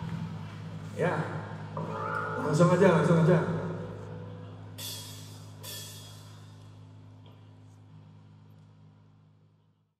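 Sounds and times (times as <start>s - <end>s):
low amplifier hum: 0.0s - 9.9s
light cymbal strikes: 3.8s - 6.8s.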